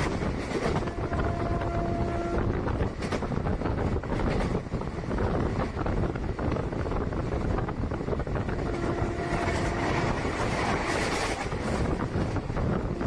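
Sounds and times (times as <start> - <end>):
train rumbling and wheels clattering: 0.0 - 13.0.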